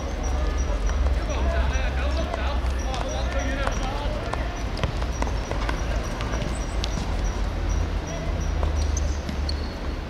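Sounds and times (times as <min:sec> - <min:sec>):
players shouting: 0:00.0 - 0:08.4
running feet: 0:00.0 - 0:09.4.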